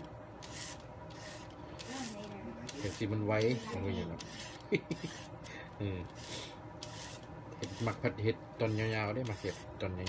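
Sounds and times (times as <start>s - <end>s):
peeler scraping carrot: 0.4s - 5.4s, 6.1s - 9.8s.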